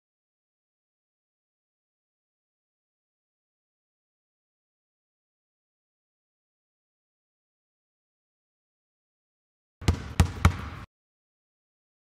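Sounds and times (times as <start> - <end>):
background noise: 9.8 - 10.9.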